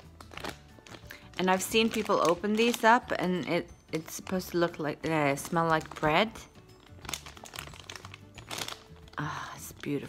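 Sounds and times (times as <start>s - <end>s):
plastic bag crinkling: 0.0s - 10.0s
quiet background music: 0.0s - 10.0s.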